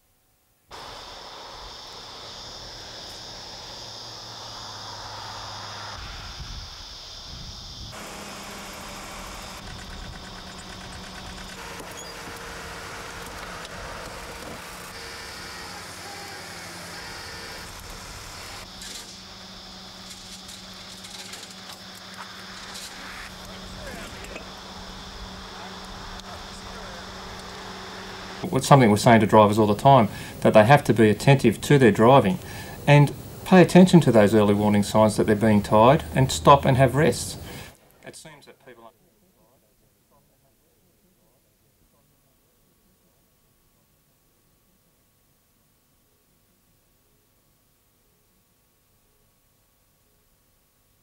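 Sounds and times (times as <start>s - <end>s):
hiss and low hum: 0.7s - 50.8s.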